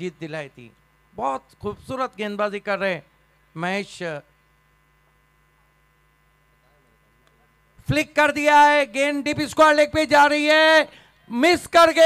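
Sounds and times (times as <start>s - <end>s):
faint electrical hum: 0.0s - 12.0s
commentator talking: 7.8s - 12.0s.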